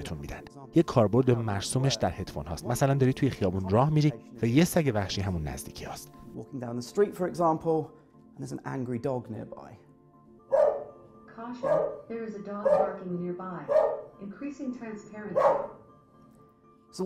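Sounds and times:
quiet background music: 0.0 - 17.0
dog barking from video: 10.5 - 11.0, 11.6 - 14.2, 15.3 - 15.8.

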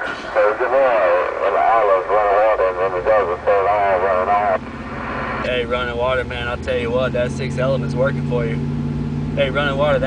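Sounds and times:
man talking over two-way radio: 0.0 - 4.6
low steady hum: 0.0 - 10.0.

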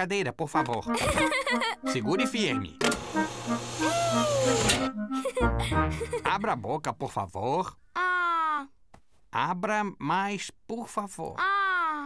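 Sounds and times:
motor hum: 2.8 - 5.0.

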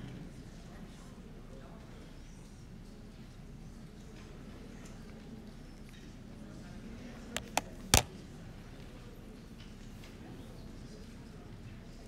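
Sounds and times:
short sharp clicks: 7.4 - 8.1.

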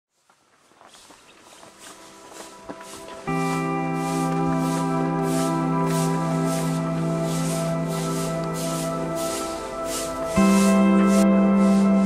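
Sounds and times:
footsteps on dirt path: 0.1 - 12.0.

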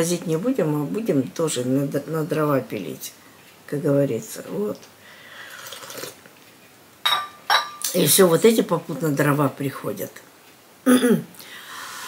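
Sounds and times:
person slurping tea: 5.5 - 6.2.

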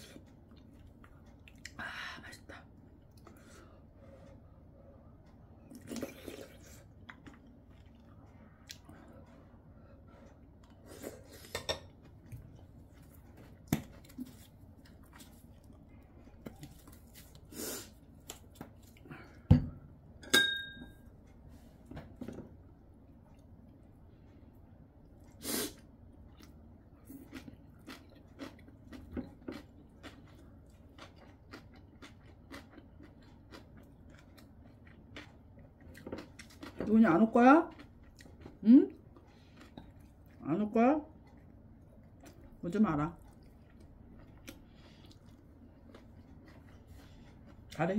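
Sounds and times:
chewing: 5.6 - 9.5, 10.1 - 19.4, 26.2 - 36.8, 37.7 - 40.4, 41.1 - 47.8
ringing clink: 20.2 - 20.9.

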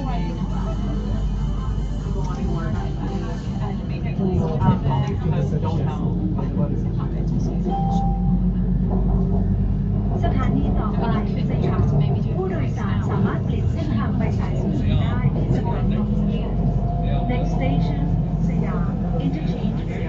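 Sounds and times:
people talking: 0.0 - 9.1, 10.0 - 20.0
train car rumble and hum: 0.0 - 20.0.

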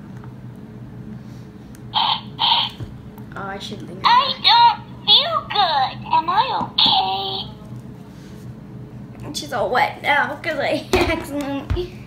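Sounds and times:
toy doll speaker noises: 2.0 - 2.8, 4.1 - 7.4.

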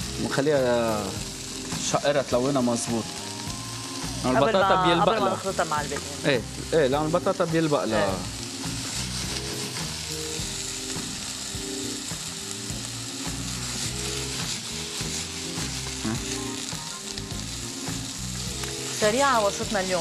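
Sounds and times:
vegetables sizzling in a frying pan: 0.0 - 20.0.

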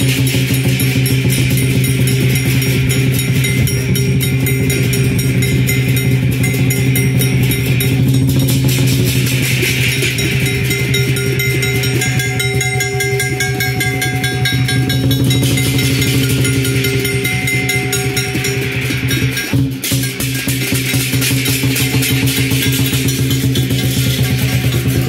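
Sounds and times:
big drum beaten fast: 0.0 - 25.0
cymbals clashing: 0.0 - 25.0
gong ringing: 0.0 - 25.0.

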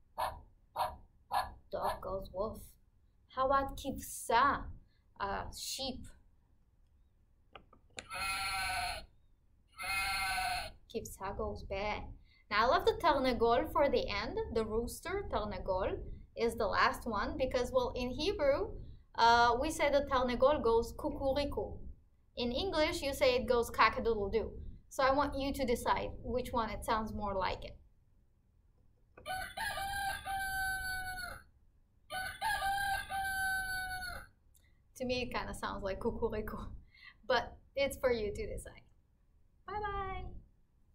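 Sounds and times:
recorded rooster crowing: 8.0 - 9.1, 9.8 - 10.8, 29.2 - 31.5, 32.1 - 34.4
recorded sheep bleat: 8.1 - 9.1, 9.8 - 10.8.

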